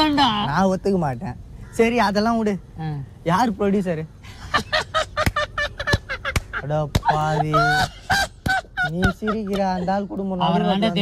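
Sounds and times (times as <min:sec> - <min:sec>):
man laughing loudly: 0:04.4 - 0:10.0.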